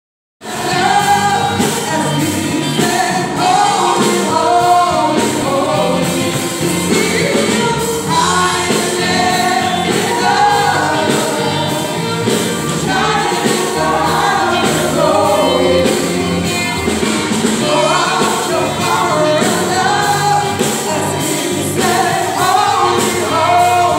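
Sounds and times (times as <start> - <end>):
gospel band singing and playing: 0.4 - 23.9.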